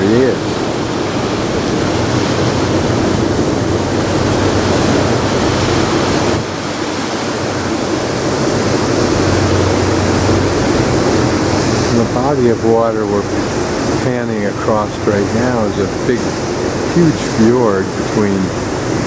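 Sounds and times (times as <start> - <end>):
low engine hum: 0.0 - 19.0
water rushing: 0.0 - 19.0
wind: 0.0 - 19.0.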